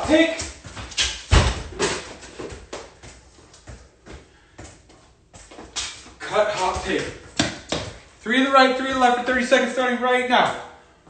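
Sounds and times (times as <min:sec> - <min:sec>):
soccer ball touches on concrete: 0:00.0 - 0:08.1
footsteps on concrete: 0:00.0 - 0:08.2.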